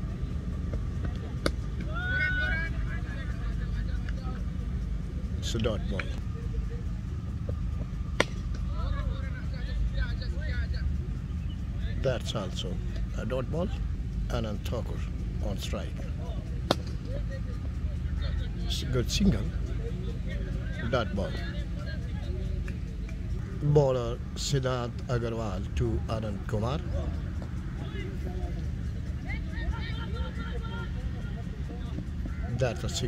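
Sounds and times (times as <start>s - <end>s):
distant players calling: 0.0s - 33.0s
steady low rumble: 0.0s - 33.0s
cricket bat striking ball: 8.2s - 8.6s.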